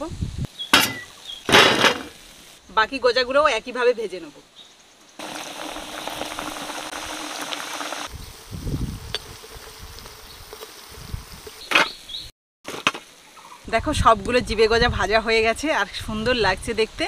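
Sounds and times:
dough sizzling in hot oil: 0:05.2 - 0:12.0.

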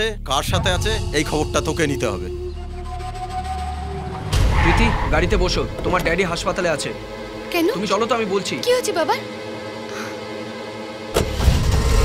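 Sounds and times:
quiet film music: 0:00.0 - 0:12.0
car engine starting and rumbling: 0:03.6 - 0:07.5, 0:11.1 - 0:12.0.

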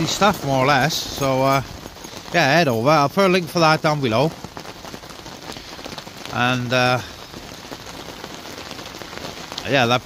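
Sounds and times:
rain pattering: 0:00.0 - 0:10.0.

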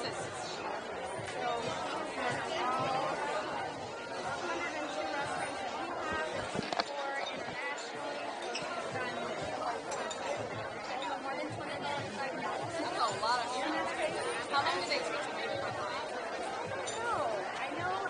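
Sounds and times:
crowd babble in restaurant: 0:00.0 - 0:18.0.

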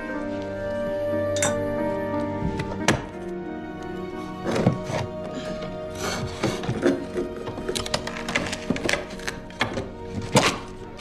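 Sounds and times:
film score music with held tones: 0:00.0 - 0:11.0.

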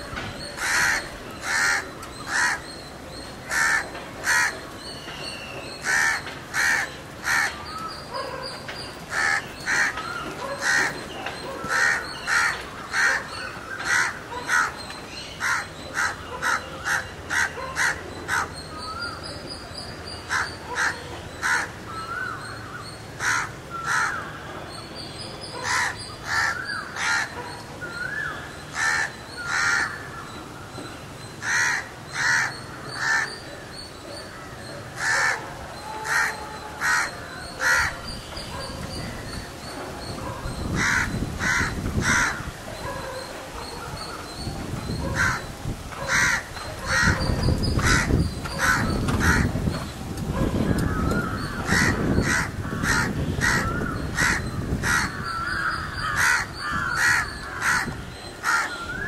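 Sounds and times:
crows cawing: 0:00.6 - 0:02.8, 0:03.4 - 0:04.6, 0:05.8 - 0:07.8, 0:09.1 - 0:11.0, 0:11.6 - 0:14.8, 0:15.4 - 0:18.6, 0:20.3 - 0:22.4, 0:23.2 - 0:24.4, 0:25.6 - 0:27.3, 0:28.7 - 0:30.2, 0:31.4 - 0:33.4, 0:35.0 - 0:38.1, 0:40.7 - 0:42.5, 0:45.2 - 0:45.5, 0:46.1 - 0:47.2, 0:47.8 - 0:49.6, 0:50.7 - 0:59.0
birds whistled calls: 0:20.1 - 0:59.0.

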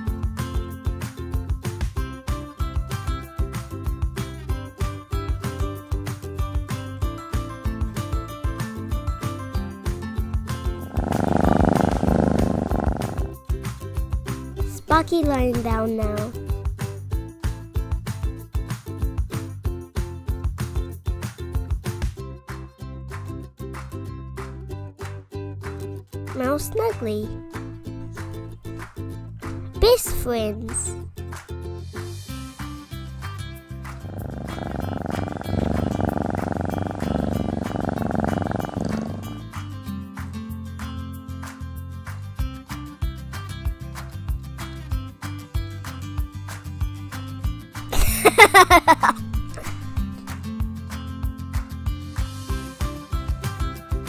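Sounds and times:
cat purring loudly: 0:10.6 - 0:13.4, 0:26.4 - 0:31.0, 0:33.8 - 0:39.7, 0:48.0 - 0:50.3.

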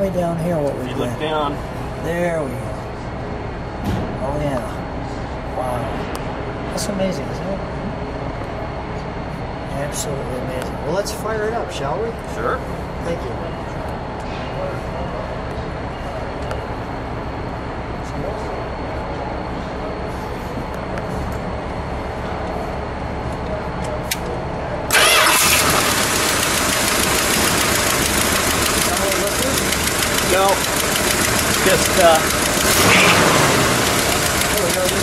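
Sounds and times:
car engine rumbling: 0:24.9 - 0:35.0.

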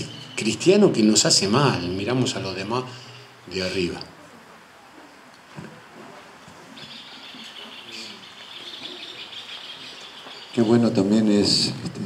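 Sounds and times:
birds chirping: 0:00.0 - 0:04.1, 0:06.5 - 0:11.8.

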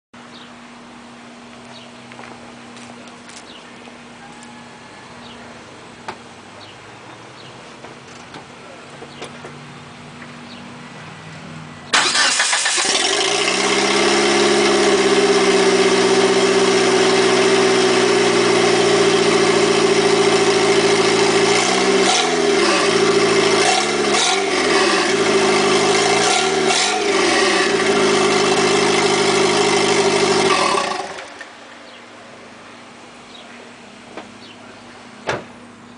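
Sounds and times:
turbocharged car engine idling and revving: 0:11.9 - 0:32.0.

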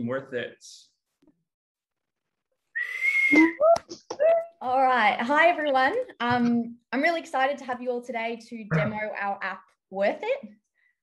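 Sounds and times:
loud whistle: 0:02.8 - 0:03.6.

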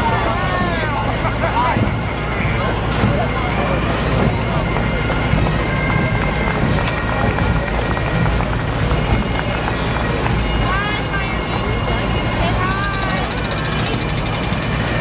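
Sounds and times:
crowd voices: 0:00.0 - 0:15.0
diesel engine rumbling: 0:00.0 - 0:15.0.

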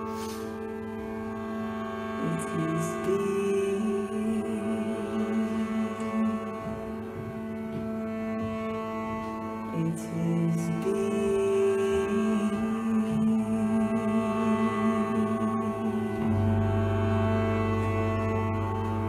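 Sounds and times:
bowed cello long notes: 0:00.0 - 0:19.0
steady drone: 0:00.0 - 0:19.0.

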